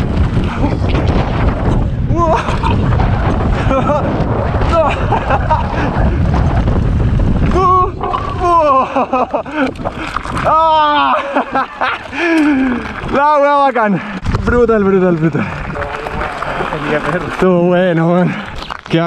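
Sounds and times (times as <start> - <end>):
wind on microphone: 0.0 - 11.3, 14.1 - 17.4
bike tyre rumble on dirt: 0.0 - 19.0.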